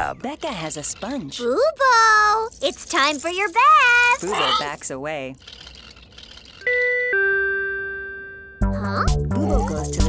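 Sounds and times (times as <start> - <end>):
two-note doorbell chime: 6.7 - 8.6.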